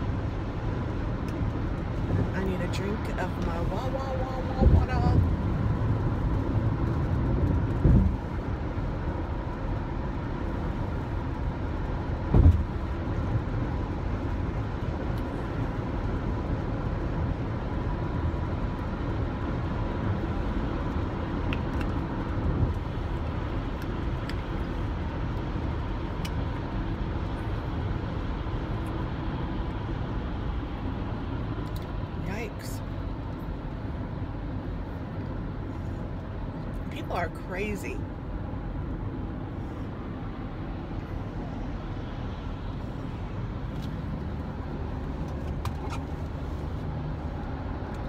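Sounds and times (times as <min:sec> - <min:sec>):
car road and engine noise: 0:00.0 - 0:48.0
short thump: 0:12.3 - 0:12.7.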